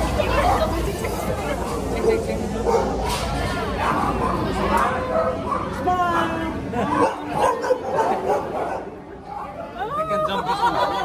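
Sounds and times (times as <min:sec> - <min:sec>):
dog barking: 0:02.6 - 0:03.0, 0:03.8 - 0:05.8, 0:06.9 - 0:09.5.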